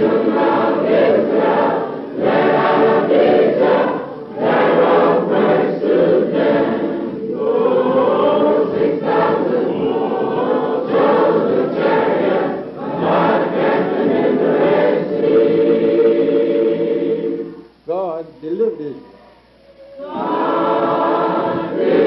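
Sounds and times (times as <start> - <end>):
choir singing: 0.0 - 17.7, 19.8 - 22.0.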